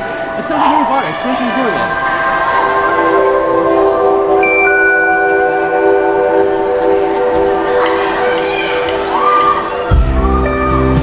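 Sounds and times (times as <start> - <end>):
higher synthesizer notes: 0.0 - 11.0
synthesizer sustained chord: 0.3 - 8.3.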